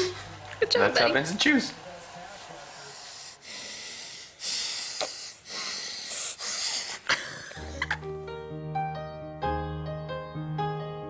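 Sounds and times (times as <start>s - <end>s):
piano music: 7.5s - 11.0s.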